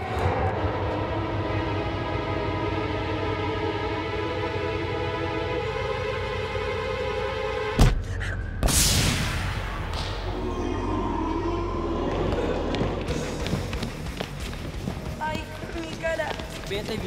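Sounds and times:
sharp hit: 0:08.6 - 0:10.2.

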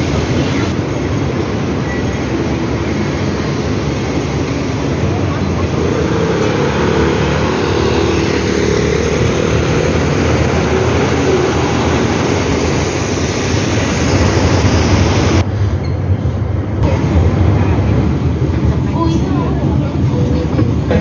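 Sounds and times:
busy traffic: 0:00.0 - 0:21.0.

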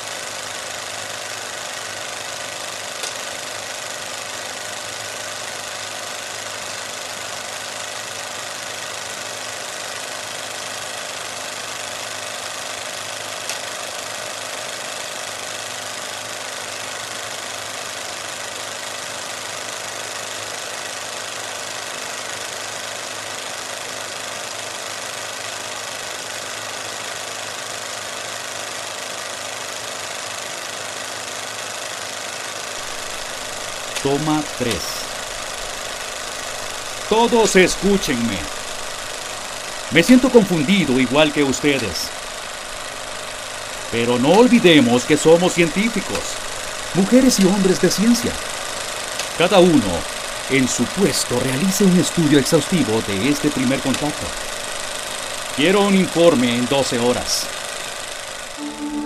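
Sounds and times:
mechanical running clatter: 0:00.0 - 0:58.6.

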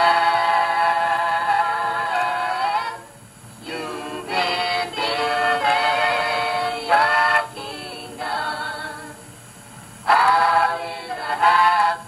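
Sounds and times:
vocal group singing gospel: 0:00.0 - 0:09.4, 0:10.0 - 0:12.0.

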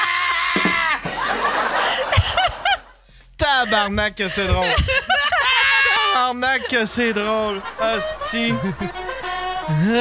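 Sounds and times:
people laughing: 0:00.7 - 0:10.0.

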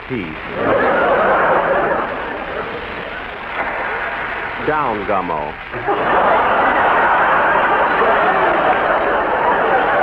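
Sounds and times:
studio audience laughing: 0:00.5 - 0:04.6, 0:05.7 - 0:10.0.

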